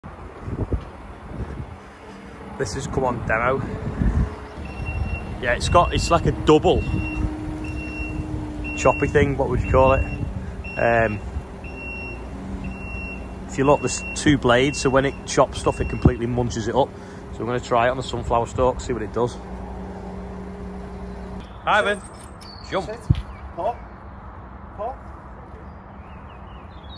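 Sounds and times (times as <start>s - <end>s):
wind buffeting microphone: 0.0s - 21.4s
diesel engine running: 1.0s - 22.0s.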